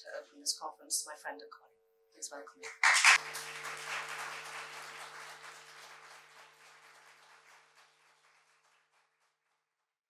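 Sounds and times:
audience applauding: 0:02.6 - 0:09.4.

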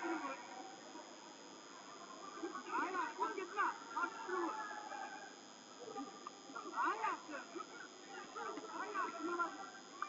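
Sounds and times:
faint arena voices: 0:00.0 - 0:10.0.

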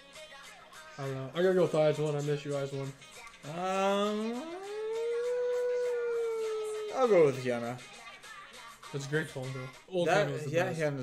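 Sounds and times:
man humming ummm: 0:03.4 - 0:07.4.

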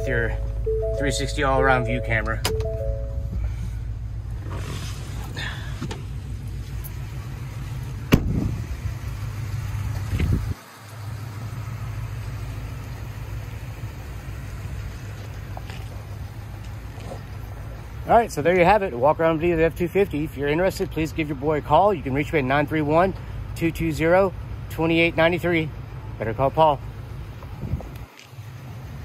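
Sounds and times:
steady low rumble: 0:00.0 - 0:24.1, 0:24.8 - 0:28.1
truck door shutting thump: 0:08.1 - 0:08.5.

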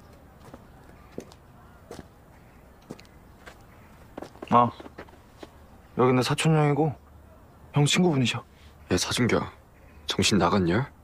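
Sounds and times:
footsteps on pavement: 0:00.0 - 0:05.7.

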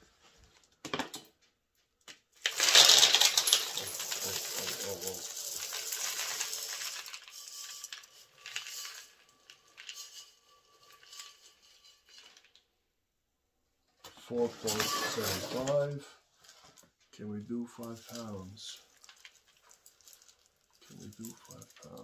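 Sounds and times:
dry food pouring onto scale: 0:02.4 - 0:12.6, 0:14.6 - 0:15.9, 0:17.8 - 0:22.0.

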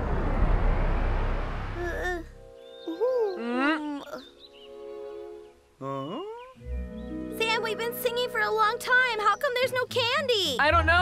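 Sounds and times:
soft background music: 0:02.4 - 0:11.0.

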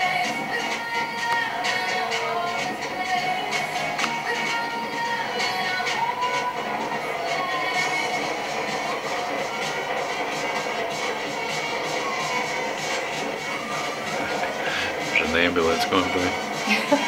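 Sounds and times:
music playing: 0:00.0 - 0:17.0.

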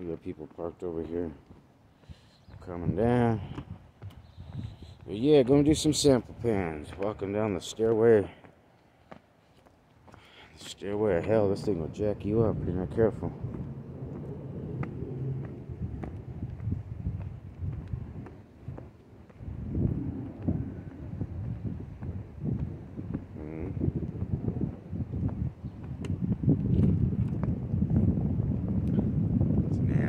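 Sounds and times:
footsteps on concrete steps: 0:00.1 - 0:27.6
wind noise on microphone: 0:02.0 - 0:07.4, 0:10.9 - 0:30.0.

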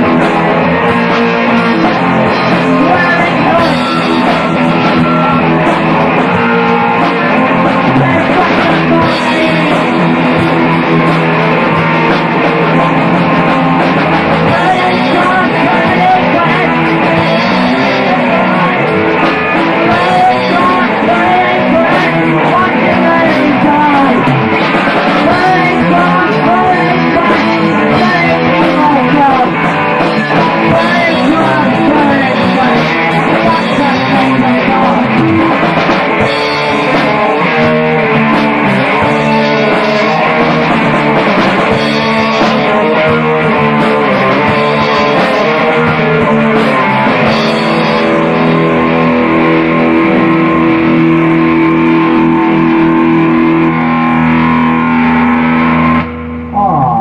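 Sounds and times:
rock song with electric guitar: 0:00.0 - 0:57.0.

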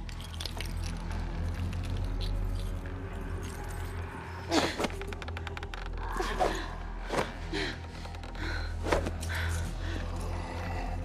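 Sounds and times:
metallic clinks and jangles: 0:00.0 - 0:04.3
low droning score: 0:00.0 - 0:11.0.

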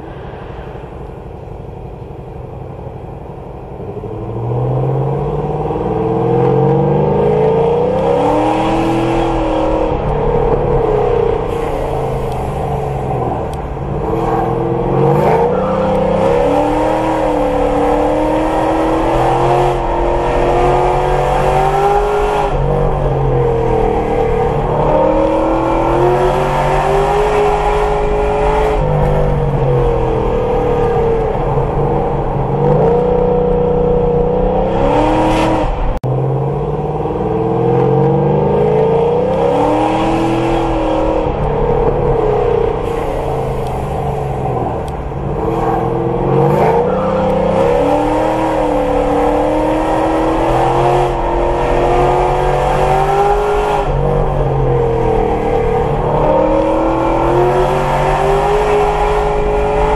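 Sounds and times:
car engine from inside cabin: 0:00.0 - 0:59.9.

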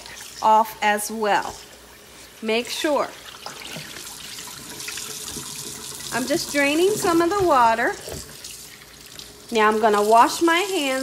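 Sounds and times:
faucet running into bowl: 0:02.7 - 0:11.0.

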